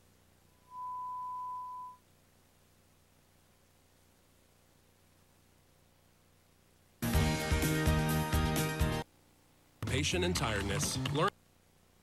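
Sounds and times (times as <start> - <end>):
faint broadcast hiss: 0.0 - 12.0
electronic beep: 0.6 - 2.0.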